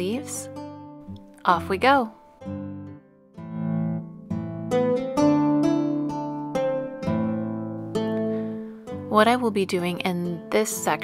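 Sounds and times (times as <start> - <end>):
plucked string melody: 0.0 - 11.0.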